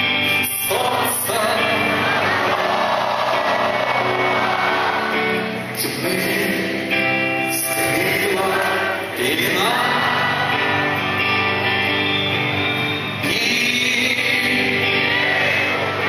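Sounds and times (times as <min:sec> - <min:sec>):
electric guitars: 0:00.0 - 0:16.0
man singing into microphone: 0:00.2 - 0:03.5, 0:05.6 - 0:10.9, 0:13.1 - 0:16.0.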